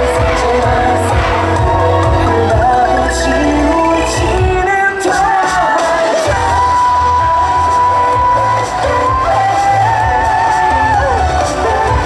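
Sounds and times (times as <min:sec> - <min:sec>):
dance track over speakers: 0:00.0 - 0:12.0
heavy bass beat: 0:00.0 - 0:12.0
person singing: 0:00.0 - 0:12.0
audience whooping: 0:05.6 - 0:12.0.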